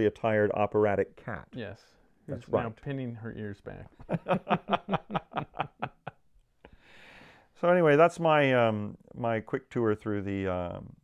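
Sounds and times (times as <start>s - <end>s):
man chuckling: 4.0s - 6.2s.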